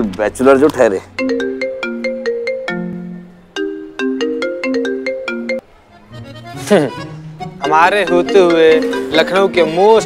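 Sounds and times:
marimba phone ringtone: 1.2 - 5.6, 7.6 - 10.0.

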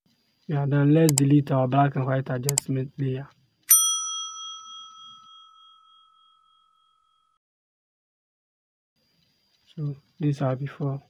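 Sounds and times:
bell-like chime: 3.7 - 7.4.

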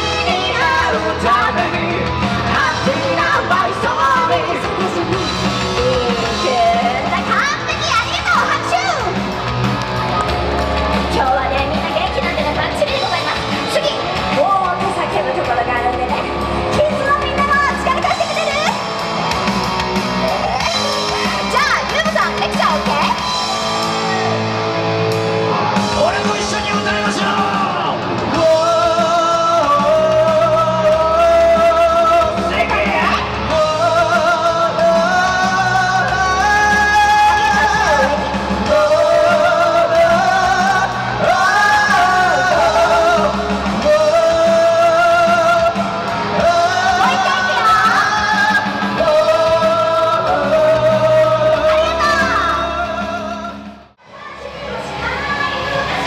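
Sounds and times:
electric guitar: 0.0 - 53.9.

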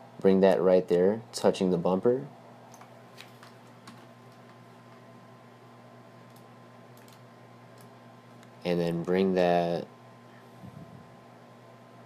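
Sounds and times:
faint electrical hum: 0.0 - 12.0
keyboard and mouse clicks: 6.3 - 7.2.

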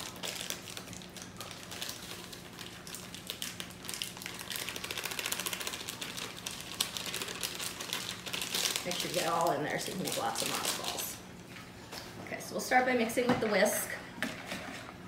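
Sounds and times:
foil packet crinkling: 0.0 - 11.2.

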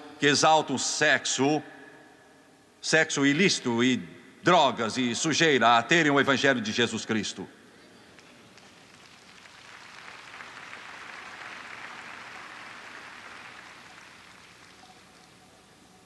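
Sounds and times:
congregation applauding: 8.1 - 15.8.

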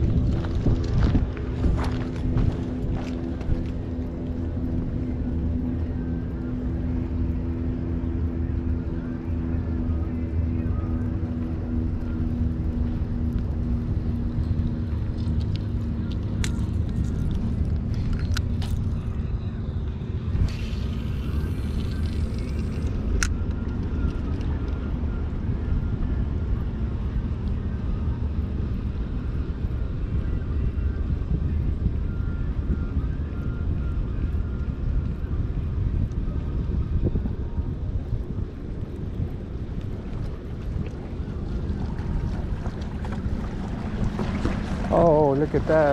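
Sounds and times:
boat engine hum: 0.0 - 45.9
wind rumble: 0.0 - 45.9.

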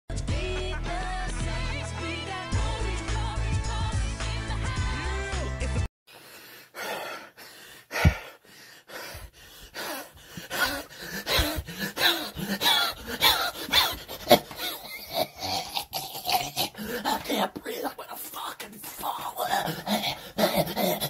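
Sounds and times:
man laughing hysterically: 10.6 - 15.4.

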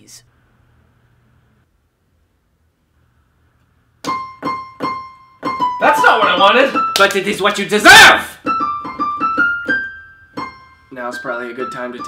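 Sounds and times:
digital piano notes: 4.0 - 7.5, 8.4 - 12.0.

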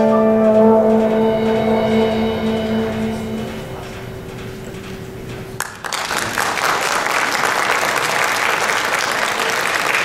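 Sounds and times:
trombone holding long note: 0.0 - 4.6
jazz band sustained chord: 0.0 - 5.6.

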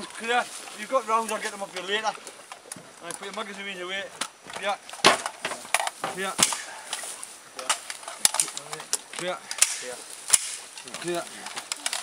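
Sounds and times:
voices calling out: 0.0 - 12.0
rifle actions clicking: 7.6 - 12.0.

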